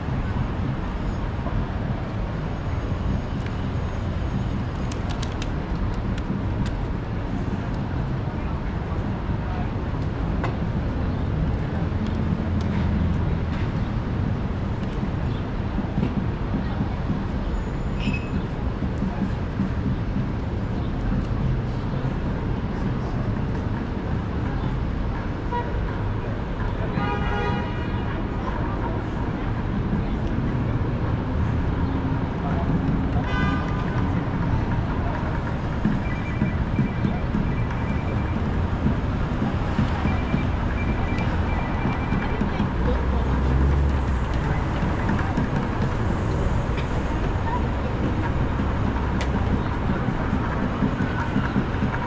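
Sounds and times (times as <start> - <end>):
pedestrians chattering: 0.0 - 52.0
traffic rumble: 0.0 - 52.0.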